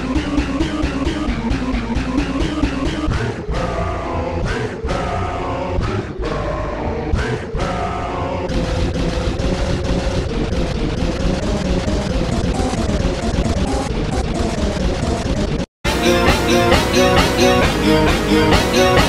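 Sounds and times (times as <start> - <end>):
rock music playing: 15.9 - 19.0.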